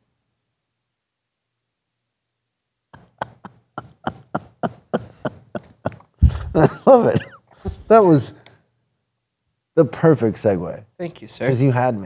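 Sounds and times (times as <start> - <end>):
man laughing hard: 3.0 - 7.4.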